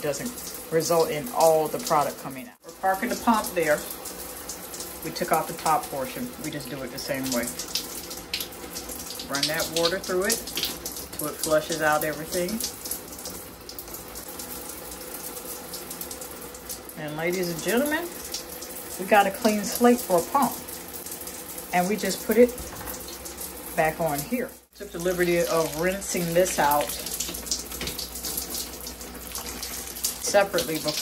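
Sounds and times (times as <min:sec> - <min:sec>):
tap water running: 0:00.0 - 0:31.0.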